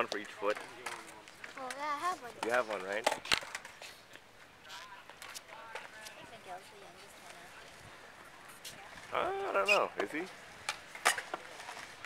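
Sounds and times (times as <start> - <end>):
skateboard clacks on concrete: 0.0 - 3.9, 4.8 - 6.4, 9.7 - 12.0
distant skateboard rolling: 0.0 - 12.0.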